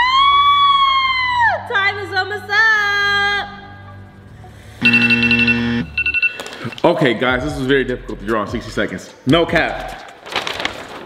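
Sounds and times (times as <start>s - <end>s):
game show buzzer: 4.8s - 6.5s.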